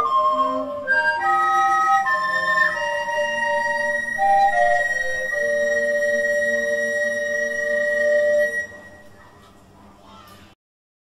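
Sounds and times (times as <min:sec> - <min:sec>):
faint room noise: 0:00.0 - 0:10.6.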